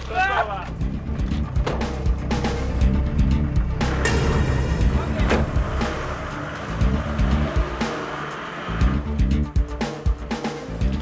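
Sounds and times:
background music: 0.0s - 11.0s
van engine revving: 0.6s - 11.0s.

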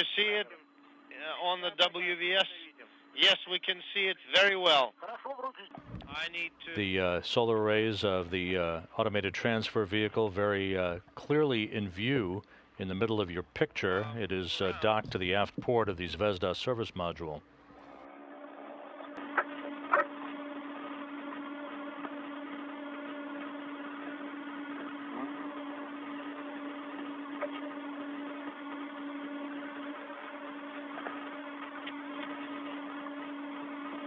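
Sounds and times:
radio channel hum and hiss: 0.0s - 34.0s.

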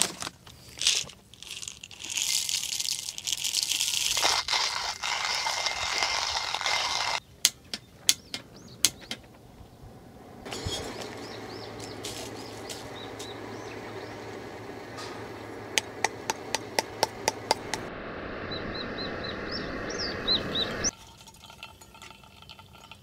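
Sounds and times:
hand coffee grinder grinding beans: 0.0s - 7.2s.

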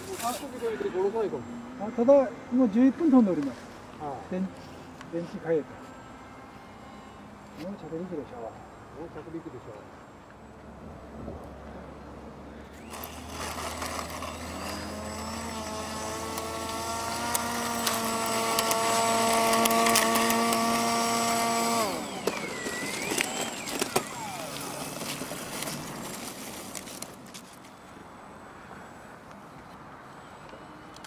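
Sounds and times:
model aircraft propeller droning: 12.7s - 28.0s.

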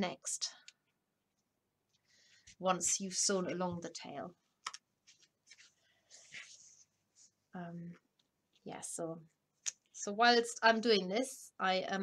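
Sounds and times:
hands rustling wool: 5.0s - 7.6s.

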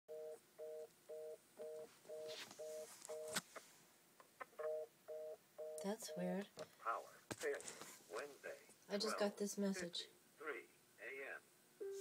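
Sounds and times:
telephone busy signal beeps: 0.1s - 3.4s.

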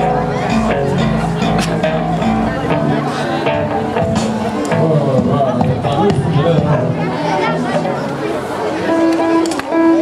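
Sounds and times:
amplified guitar: 0.0s - 10.0s
bass notes: 0.0s - 10.0s
keyboard notes: 0.0s - 10.0s.

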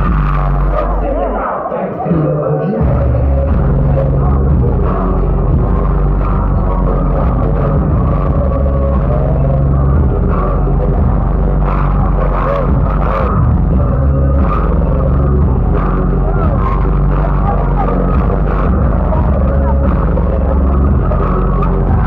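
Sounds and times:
bass-heavy concert music: 0.0s - 22.0s
crowd shouting and whooping: 0.0s - 22.0s.

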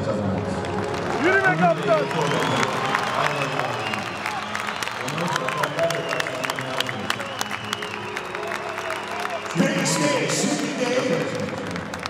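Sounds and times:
crowd clapping: 0.0s - 12.0s.

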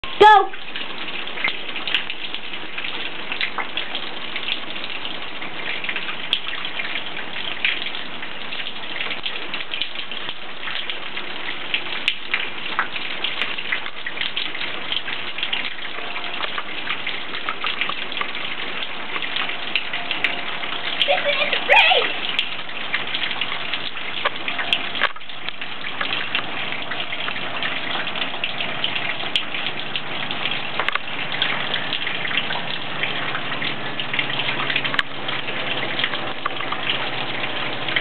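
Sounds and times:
rain on pavement: 0.0s - 38.0s.

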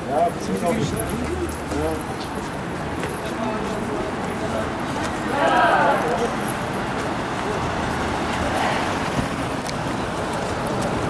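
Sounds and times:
group of people talking: 0.0s - 11.0s
street noise: 0.0s - 11.0s.

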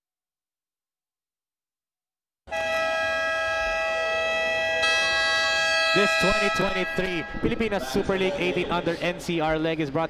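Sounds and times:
steady electronic tone: 2.5s - 9.2s.

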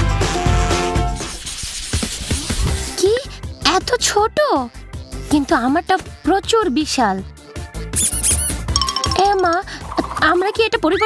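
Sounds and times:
background music: 2.9s - 11.0s
cartoon high-pitched squeaks: 8.0s - 8.6s.

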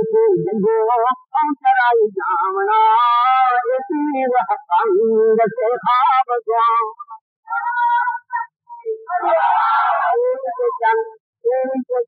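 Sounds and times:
high-pitched voice chanting: 0.0s - 12.0s.

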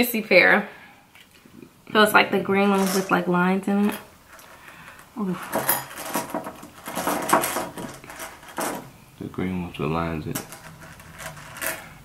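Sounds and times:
jelly beans rattling in a bowl: 2.6s - 8.8s.

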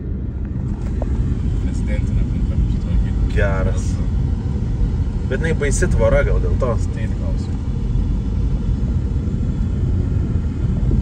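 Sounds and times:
car engine: 0.0s - 11.0s
tyre road noise: 0.0s - 11.0s.

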